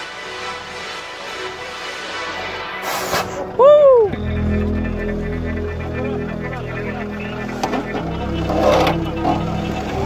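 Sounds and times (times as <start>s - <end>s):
car engine running low: 3.4s - 10.0s
person shouting: 3.6s - 4.2s.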